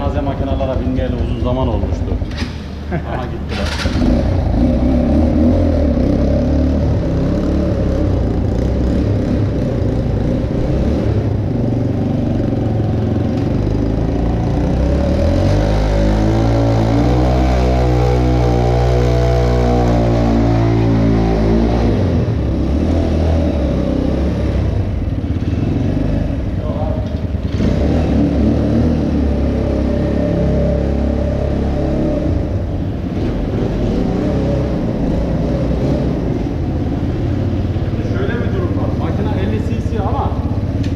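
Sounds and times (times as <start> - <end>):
motorcycle engine revving: 0.0 - 40.9.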